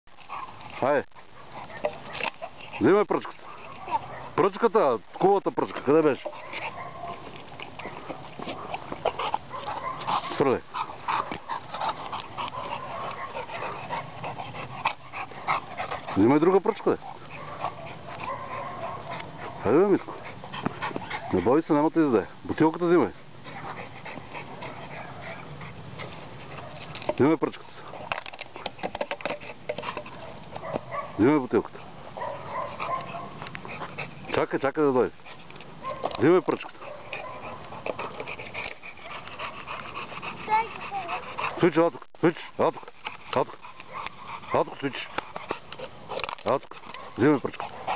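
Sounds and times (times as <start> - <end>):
dog panting: 0.1 - 47.9.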